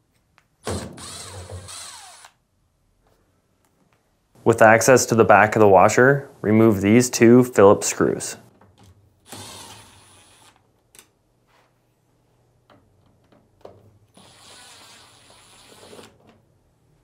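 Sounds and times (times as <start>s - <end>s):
cordless screwdriver motor whining: 1.0s - 2.4s, 14.2s - 16.1s.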